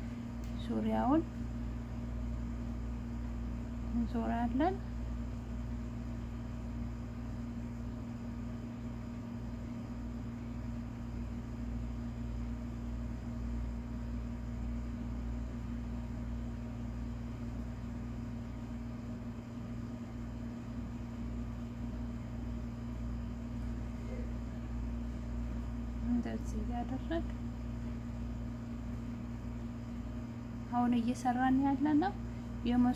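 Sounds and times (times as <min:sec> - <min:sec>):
low mechanical hum: 0:00.0 - 0:32.9.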